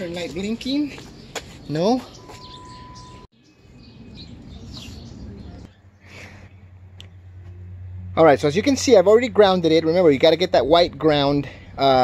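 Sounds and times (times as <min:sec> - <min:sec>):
faint bird chirps: 0:02.0 - 0:06.2
high-pitched beep: 0:02.2 - 0:03.3.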